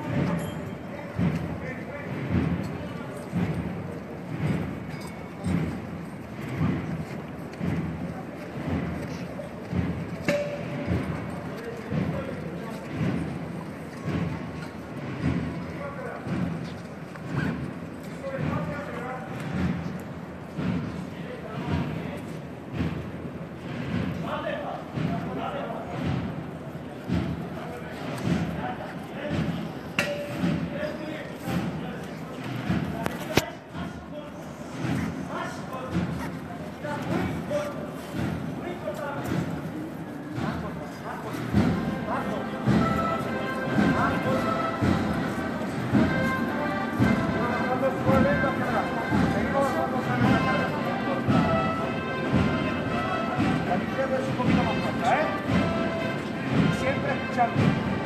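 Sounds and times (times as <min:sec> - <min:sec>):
crowd voices: 0:00.0 - 0:58.0
low drum thuds: 0:01.1 - 0:07.0, 0:07.6 - 0:58.0
procession music: 0:41.4 - 0:58.0.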